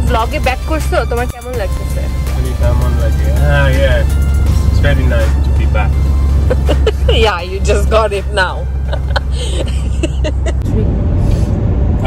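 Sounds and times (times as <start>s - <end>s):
car engine and road rumble: 0.0s - 12.0s.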